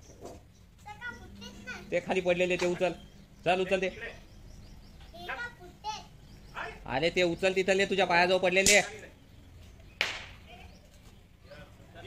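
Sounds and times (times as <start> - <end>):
firecracker crack: 8.6 - 9.0, 10.0 - 10.5.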